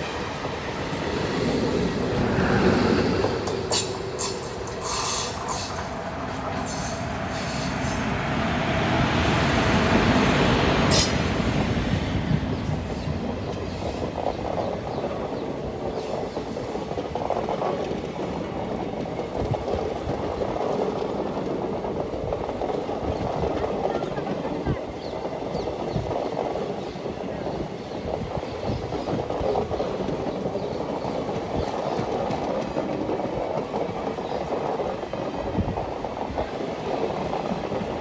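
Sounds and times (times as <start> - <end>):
passenger train passing: 0.0 - 38.0.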